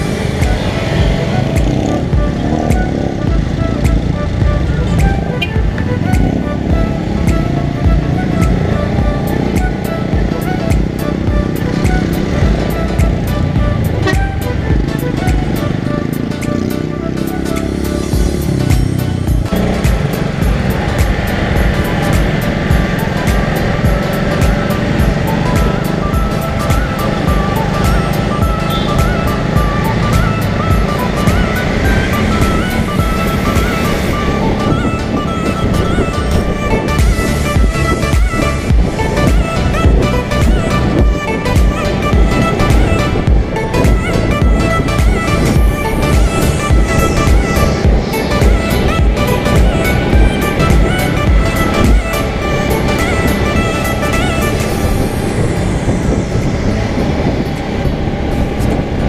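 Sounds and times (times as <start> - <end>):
motorcycle engine running: 0.0 - 59.0
music with steady beat: 0.0 - 59.0
road noise: 0.0 - 59.0.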